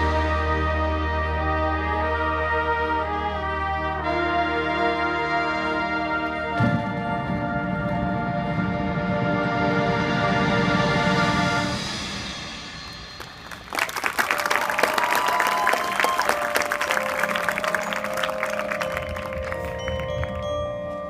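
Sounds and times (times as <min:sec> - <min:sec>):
marching band sustained chord: 0:00.0 - 0:21.0
applause: 0:13.2 - 0:20.5
mallet percussion tones: 0:14.4 - 0:21.0.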